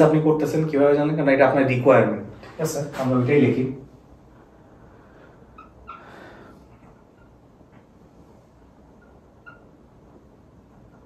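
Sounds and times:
marker squeaking on a whiteboard: 5.5s - 11.0s.

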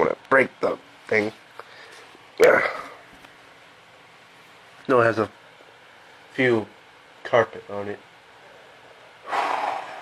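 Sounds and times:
puff of breath: 9.2s - 10.0s.

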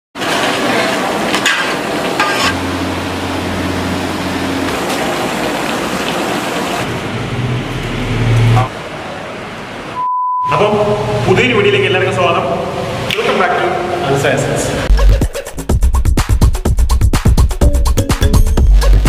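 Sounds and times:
low hum: 2.5s - 12.0s.

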